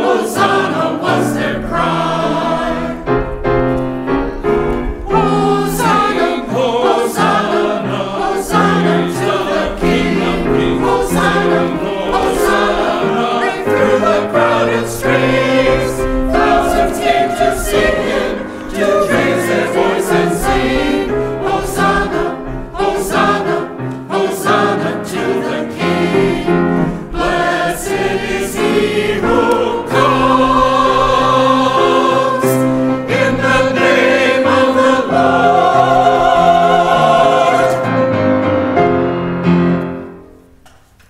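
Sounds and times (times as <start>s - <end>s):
church choir singing: 0.0s - 40.6s.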